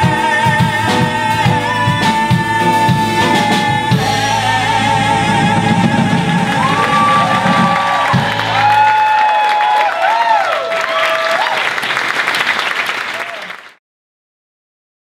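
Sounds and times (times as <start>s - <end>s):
live band playing: 0.0s - 9.4s
audience whooping and cheering: 5.4s - 13.7s
audience applauding: 5.5s - 13.8s.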